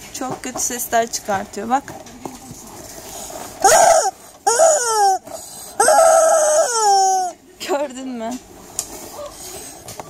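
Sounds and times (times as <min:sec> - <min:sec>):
toy chicken electronic squawks: 0:03.6 - 0:07.4.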